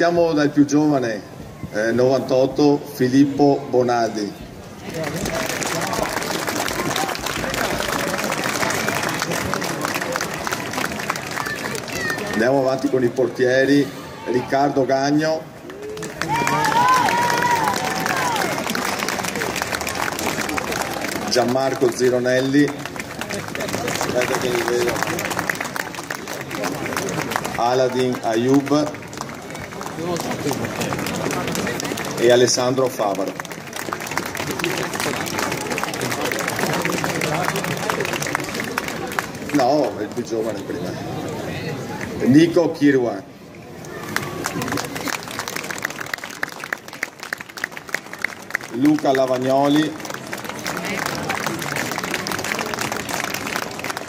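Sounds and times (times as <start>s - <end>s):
crowd clapping: 4.8s - 13.2s, 15.6s - 42.4s, 43.7s - 54.0s.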